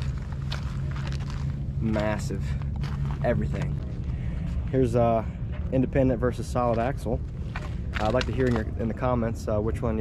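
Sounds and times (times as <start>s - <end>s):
footsteps on gravelly ground: 0.0s - 9.1s
steady low hum: 0.0s - 10.0s.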